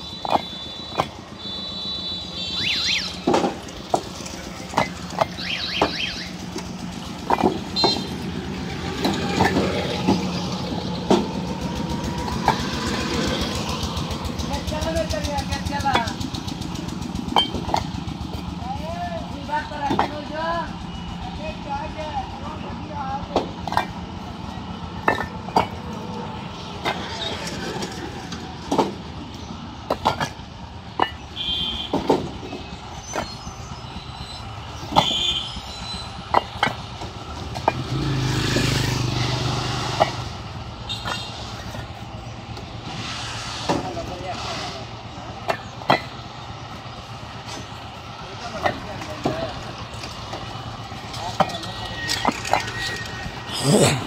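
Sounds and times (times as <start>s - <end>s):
bricks clacking together: 0.2s - 1.2s, 3.2s - 5.9s, 6.6s - 7.9s, 9.0s - 10.2s, 17.3s - 17.9s, 23.3s - 24.1s, 25.0s - 25.9s, 29.8s - 31.2s, 36.3s - 38.0s, 45.4s - 46.2s, 48.5s - 53.9s
motor vehicle passing: 3.2s - 19.6s, 34.0s - 54.0s.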